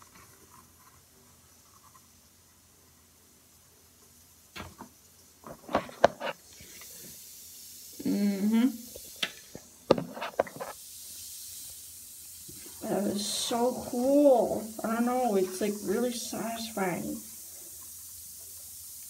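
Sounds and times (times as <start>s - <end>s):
bath bomb fizzing in water: 0.0s - 19.0s
person humming: 8.0s - 8.8s.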